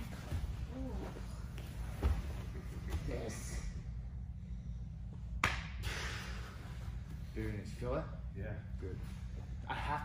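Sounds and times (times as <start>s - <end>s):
low steady hum: 0.0s - 10.0s
hand slap on body: 5.4s - 5.8s.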